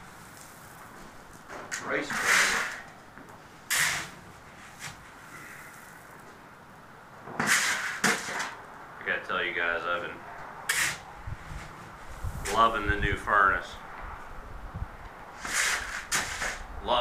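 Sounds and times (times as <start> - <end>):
shovel scraping coal: 0.0 - 6.1, 7.3 - 8.6, 10.7 - 11.1, 15.3 - 16.8.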